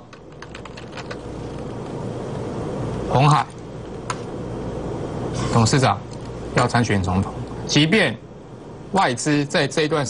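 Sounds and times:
computer keyboard typing: 0:00.0 - 0:01.6
steady low background noise: 0:00.0 - 0:10.0.

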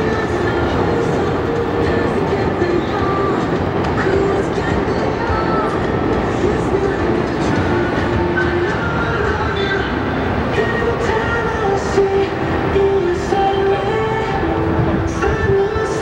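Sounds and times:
faint music melody: 0:00.0 - 0:16.0
traffic rumble: 0:00.0 - 0:16.0.

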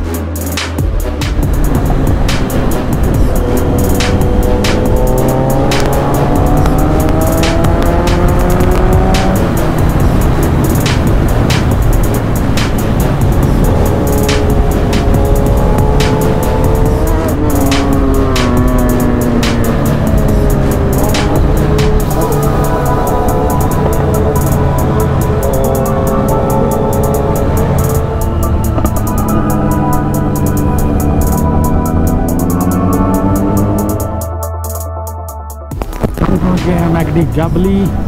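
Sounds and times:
motorcycle engine accelerating: 0:00.0 - 0:34.5
hip-hop beat: 0:00.0 - 0:38.0.

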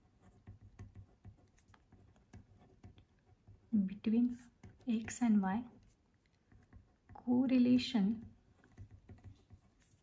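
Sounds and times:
ballpoint pen writing on paper: 0:00.0 - 0:10.0.

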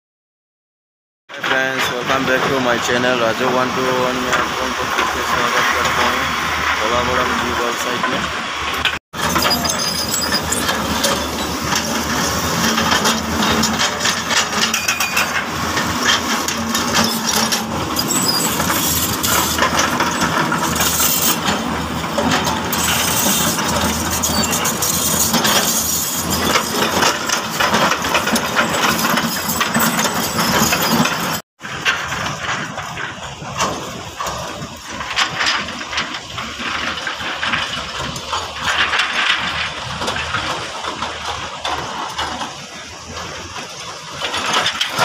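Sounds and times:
excavator diesel engines running: 0:01.3 - 0:45.0
rocks clinking and clattering: 0:01.4 - 0:45.0.

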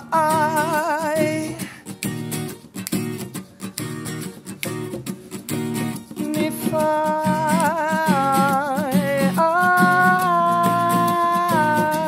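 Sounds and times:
man singing: 0:00.0 - 0:02.0, 0:06.1 - 0:12.0
acoustic guitar chords: 0:00.0 - 0:12.0.

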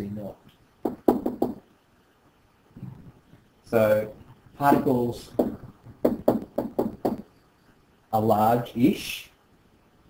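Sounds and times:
stylus knocking on tablet screen: 0:00.8 - 0:01.6, 0:05.3 - 0:07.3.

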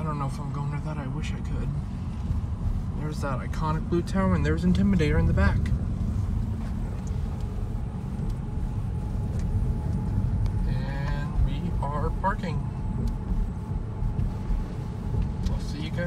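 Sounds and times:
car tyres and engine rumble: 0:00.0 - 0:16.0.

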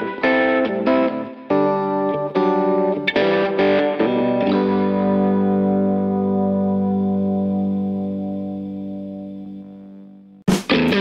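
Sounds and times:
distorted electric guitar chords: 0:00.0 - 0:11.0.

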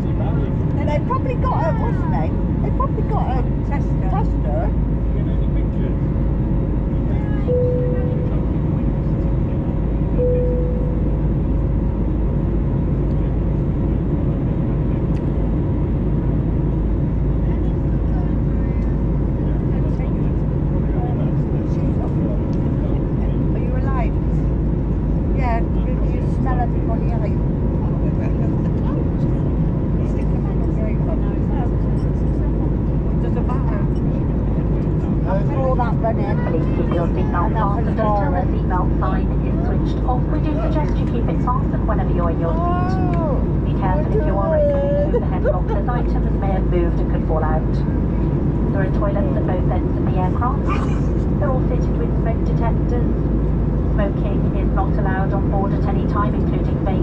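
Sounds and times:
airplane cabin engine rumble: 0:00.0 - 0:57.0
faint passenger voices: 0:00.0 - 0:57.0.

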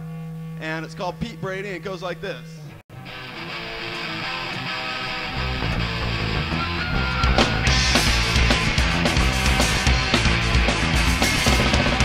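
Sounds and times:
punk rock band playing live: 0:02.9 - 0:12.0.

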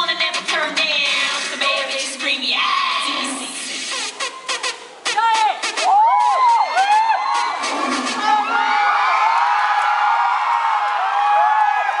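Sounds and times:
dance music: 0:00.0 - 0:09.4
audience cheering and screaming: 0:05.4 - 0:12.0.

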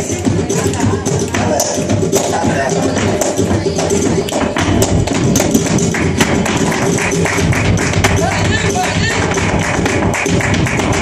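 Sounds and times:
dancer's heel and toe stamps: 0:00.0 - 0:11.0
flamenco guitar: 0:00.0 - 0:11.0
hand clapping: 0:00.4 - 0:11.0.

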